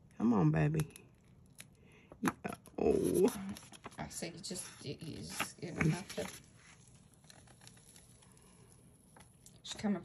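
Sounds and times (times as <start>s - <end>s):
paper peeling crackles: 5.2s - 9.6s.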